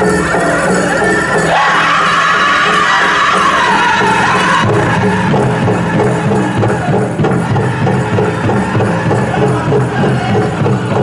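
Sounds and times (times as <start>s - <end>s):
crowd: 0.0s - 11.0s
drum: 0.0s - 11.0s
high held singing voices: 0.0s - 11.0s.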